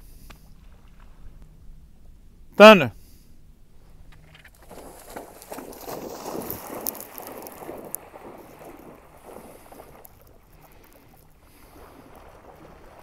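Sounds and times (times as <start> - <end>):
dog splashing through water: 4.5 - 13.0.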